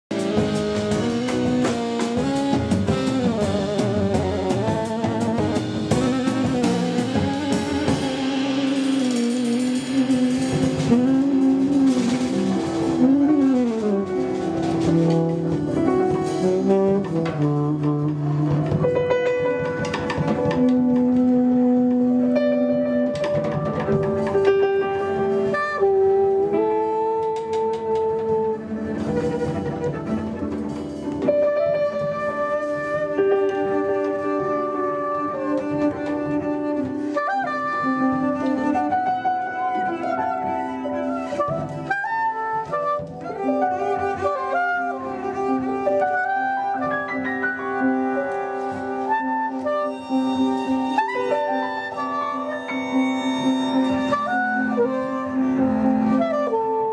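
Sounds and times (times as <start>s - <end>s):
alto saxophone long notes: 0.1s - 23.4s, 24.2s - 56.9s
bowed double bass: 0.1s - 56.9s
drums and cymbals: 0.1s - 56.9s.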